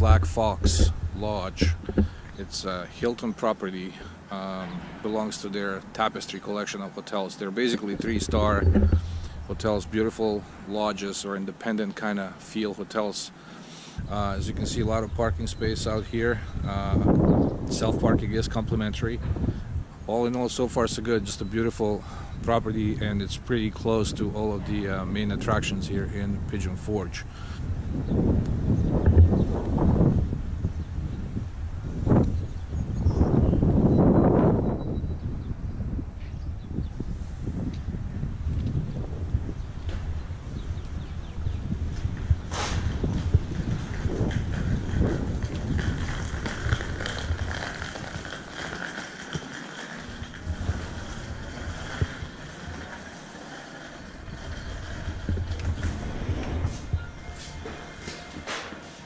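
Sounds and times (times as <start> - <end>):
wind buffeting microphone: 0.0 - 6.0, 7.6 - 10.9, 14.0 - 58.6.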